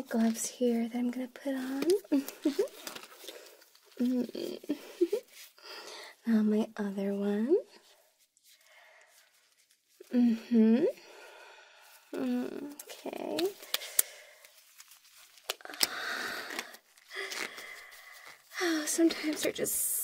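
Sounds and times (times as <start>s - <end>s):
glove rustling and stretching: 0.0s - 6.1s, 7.8s - 10.1s, 11.8s - 19.2s
woman laughing: 2.2s - 2.8s, 4.5s - 5.3s
woman humming with strain: 4.0s - 5.2s, 10.1s - 11.0s, 12.2s - 13.5s.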